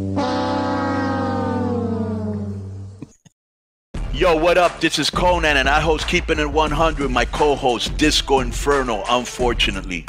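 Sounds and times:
held note sinking in pitch: 0.0 - 3.0.

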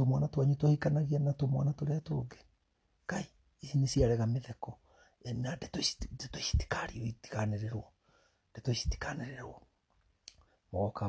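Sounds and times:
man speaking close to microphone: 0.0 - 7.9, 8.5 - 9.7, 10.7 - 11.0.

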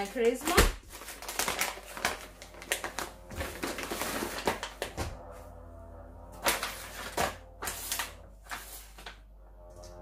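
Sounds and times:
plastic packaging crinkling: 0.0 - 5.2, 6.4 - 9.2.

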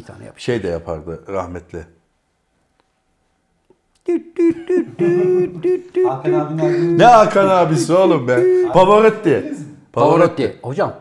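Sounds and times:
man singing mock opera: 4.0 - 9.1.

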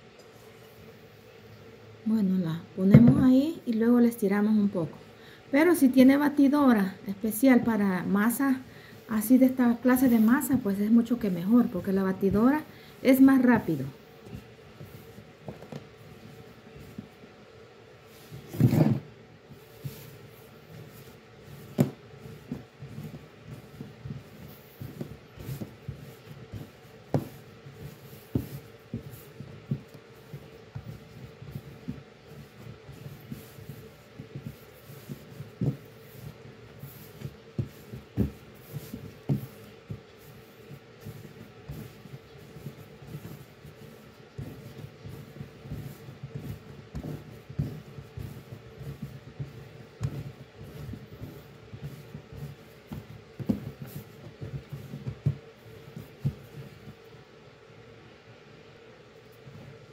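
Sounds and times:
dough being kneaded by hand: 0.0 - 59.9
dough thumping on counter: 2.8 - 3.4, 20.7 - 57.0.

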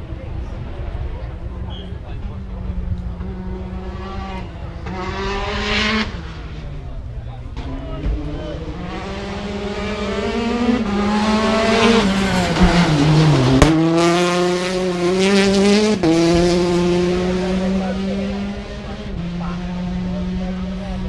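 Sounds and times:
car engine at full throttle: 0.0 - 21.0.

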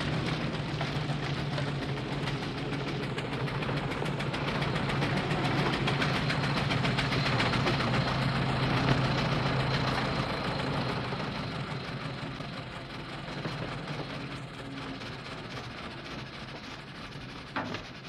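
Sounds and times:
car engine running: 0.0 - 17.5.

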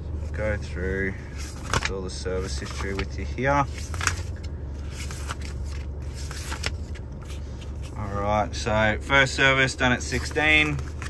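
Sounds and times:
low hum in vehicle cab: 0.0 - 11.0
paper rustling: 1.3 - 8.3, 9.6 - 11.0.

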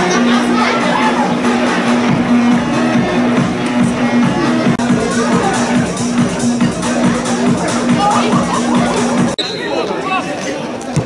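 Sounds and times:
players and spectators chattering: 0.0 - 11.0.

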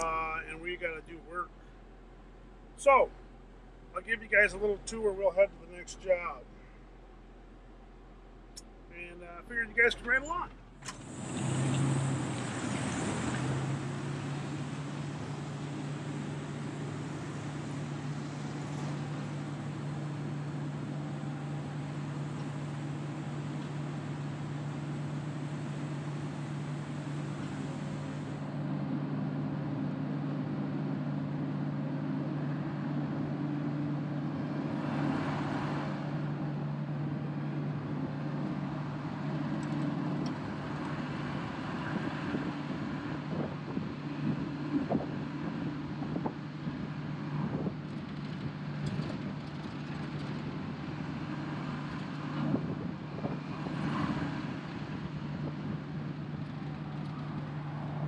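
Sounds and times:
diesel engine droning: 0.0 - 58.0.

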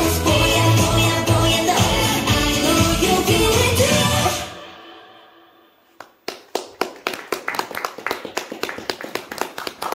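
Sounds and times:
people clapping: 5.9 - 10.0.

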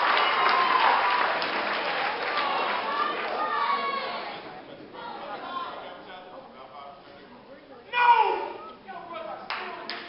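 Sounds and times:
murmur of voices: 2.0 - 10.0
person shouting a call: 7.9 - 8.6
sharp hand claps: 9.5 - 10.0.

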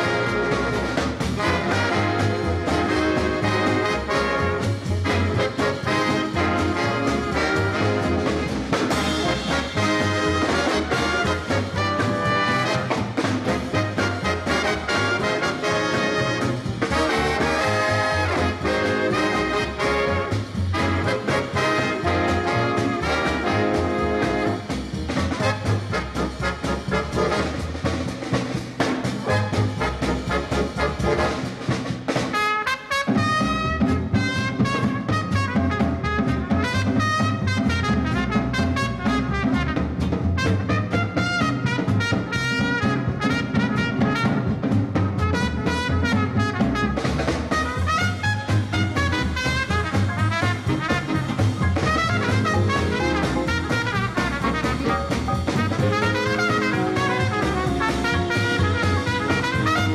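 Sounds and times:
big band swing music: 0.0 - 59.9.

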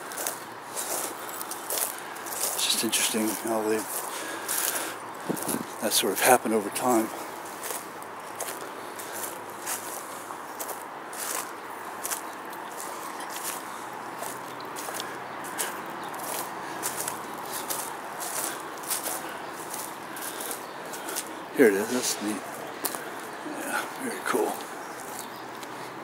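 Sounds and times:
footsteps on dry leaves: 0.0 - 6.0, 6.9 - 26.0
background hiss: 0.0 - 12.1, 12.8 - 26.0.

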